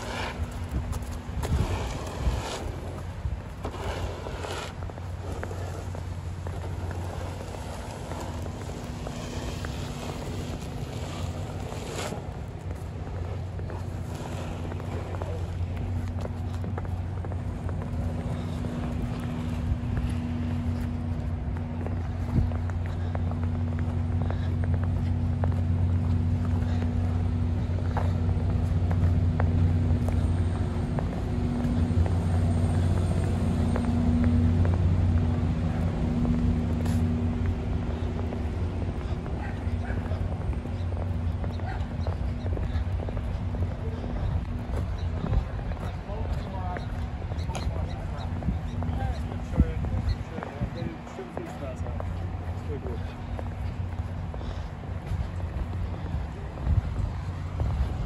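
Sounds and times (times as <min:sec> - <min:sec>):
footsteps in snow: 0:00.0 - 0:58.0
diesel engines idling: 0:12.4 - 0:58.0.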